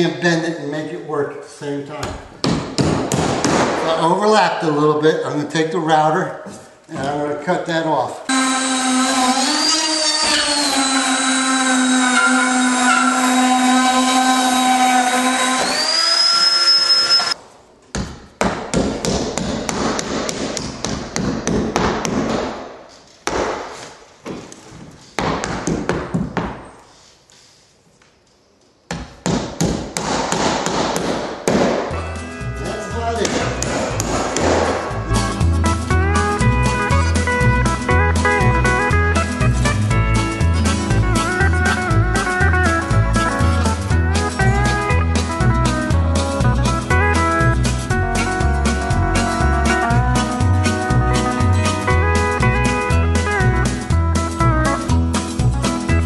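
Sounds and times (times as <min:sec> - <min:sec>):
hammer driving nails: 0:02.4 - 0:03.9, 0:08.4 - 0:17.3, 0:18.0 - 0:23.9, 0:28.9 - 0:32.0, 0:33.2 - 0:35.0
drywall router high whine: 0:08.3 - 0:17.4
guitar music: 0:31.9 - 0:56.0.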